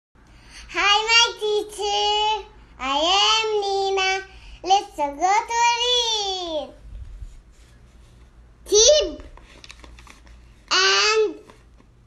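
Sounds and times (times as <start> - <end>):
girl singing in high voice: 0.7 - 6.7.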